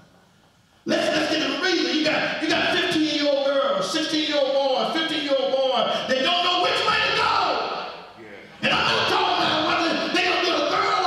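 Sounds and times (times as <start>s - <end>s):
man preaching in chanted cadence: 8.6s - 11.0s.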